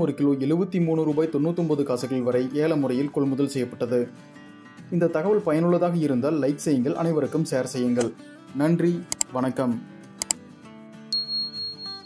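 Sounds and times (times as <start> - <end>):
background music: 0.0 - 12.0
quick double click: 10.2 - 10.4
high bell chime: 11.1 - 12.0.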